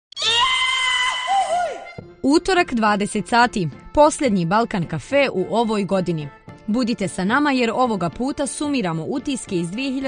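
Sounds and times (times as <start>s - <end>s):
high-pitched voice-like cry: 0.2s - 1.9s.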